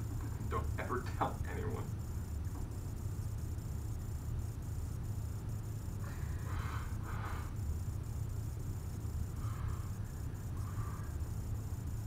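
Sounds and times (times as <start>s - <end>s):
constant low hum: 0.0s - 12.0s
faint high-pitched whine: 0.0s - 12.0s.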